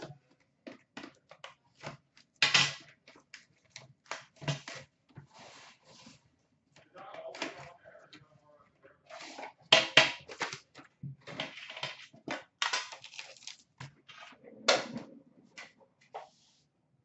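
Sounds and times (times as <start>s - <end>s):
plastic wrap crinkling and tearing: 12.7s - 13.8s.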